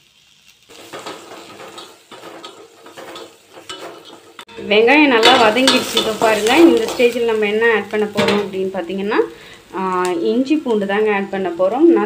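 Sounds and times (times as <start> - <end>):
onions sizzling in hot oil: 0.0 - 12.0.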